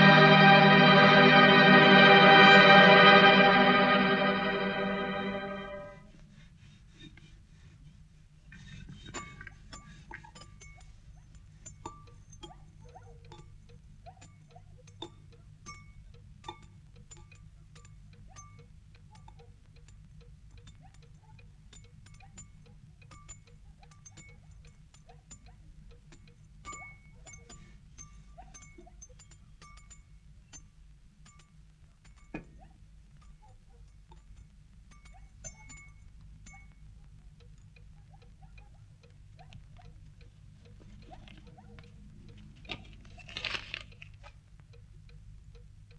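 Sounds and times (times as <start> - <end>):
low steady hum: 0.0 - 45.9.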